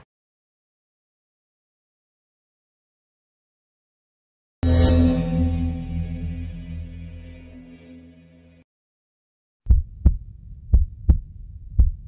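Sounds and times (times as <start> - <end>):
heartbeat thumps: 9.7 - 12.0.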